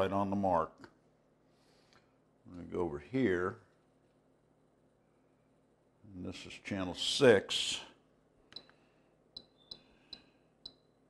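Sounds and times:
transmitter key click-beeps: 8.5s - 8.8s, 9.4s - 11.0s.

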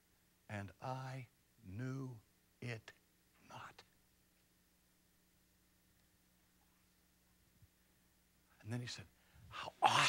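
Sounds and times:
man whispering: 0.6s - 3.9s, 8.5s - 10.0s.

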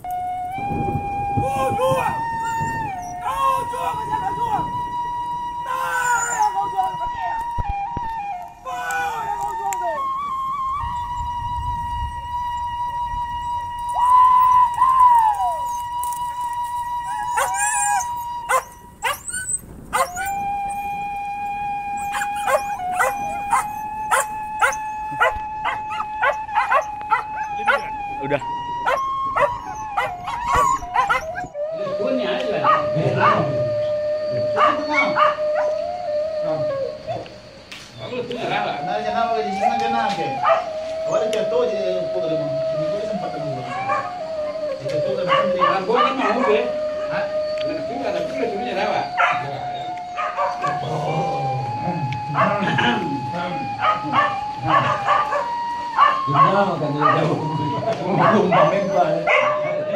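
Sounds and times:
dogs howling: 1.1s - 11.4s, 13.4s - 59.9s
dogs barking: 17.0s - 20.4s, 22.0s - 28.0s, 28.8s - 31.5s, 32.6s - 33.5s, 34.6s - 35.8s, 40.4s - 40.7s, 43.7s - 44.2s, 45.2s - 47.1s, 49.1s - 50.8s, 52.3s - 52.8s, 53.8s - 57.4s, 58.0s - 59.9s.

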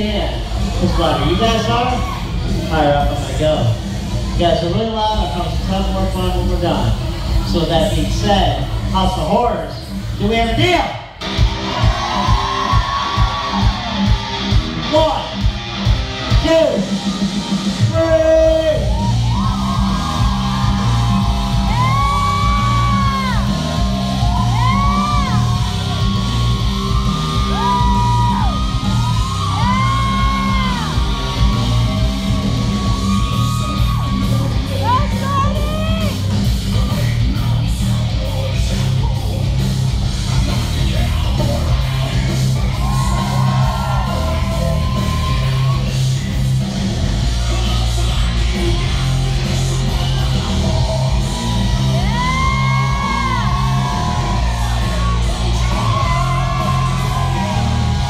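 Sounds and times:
audience yelling and whooping: 0.0s - 3.3s, 11.2s - 58.0s
loud rock music: 0.0s - 58.0s.

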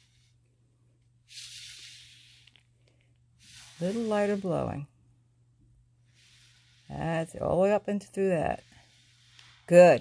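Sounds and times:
breath blown through a straw: 1.3s - 2.6s, 3.4s - 4.8s, 6.1s - 6.9s.

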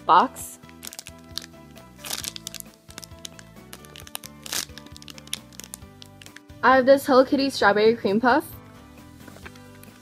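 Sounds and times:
background music sustained notes: 0.0s - 10.0s
plastic bag crinkling: 0.7s - 6.4s.

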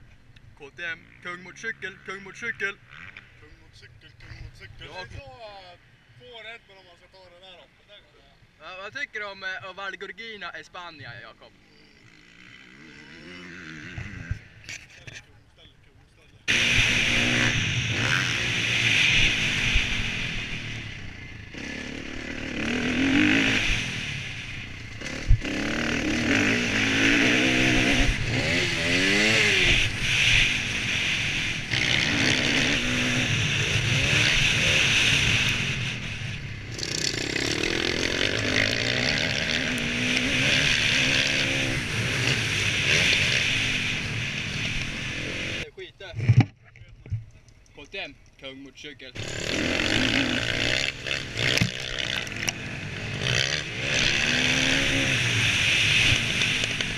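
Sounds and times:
dirt bike engine revving: 0.8s - 3.6s, 11.0s - 14.9s, 16.4s - 45.7s, 49.2s - 56.9s.

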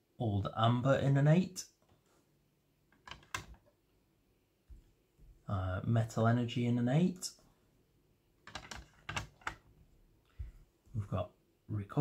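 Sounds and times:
hard plastic clicks and clacks: 3.0s - 3.7s, 8.4s - 9.6s.

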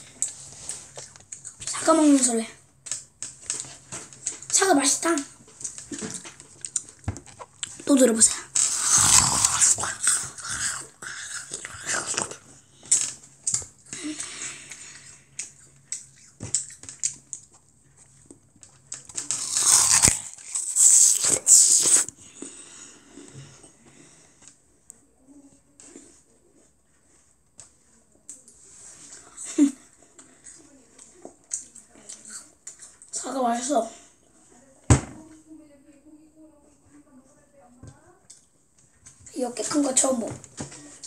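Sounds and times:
apple crunching while chewed: 4.3s - 13.0s, 15.4s - 22.4s.

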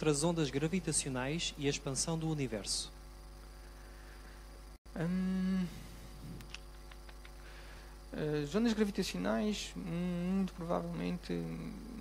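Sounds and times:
electrical mains hum: 0.0s - 12.0s
faint background hiss: 0.0s - 12.0s.

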